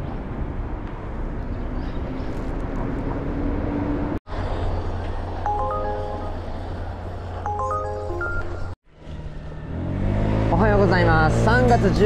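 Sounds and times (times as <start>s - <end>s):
chime-like intro music: 5.4s - 8.8s.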